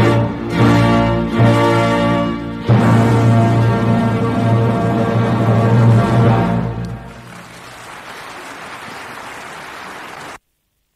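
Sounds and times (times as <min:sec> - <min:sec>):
audience applauding: 0:06.8 - 0:10.4.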